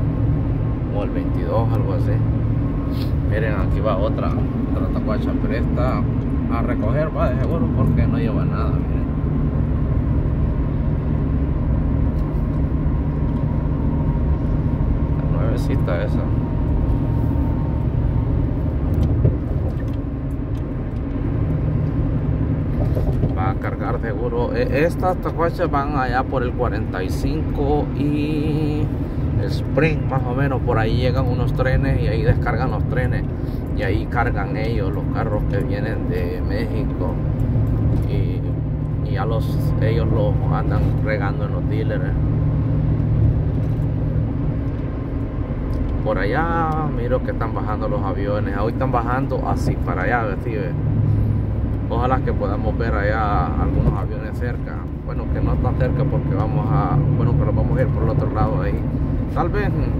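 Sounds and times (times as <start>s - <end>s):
road and engine rumble: 0.0s - 59.9s.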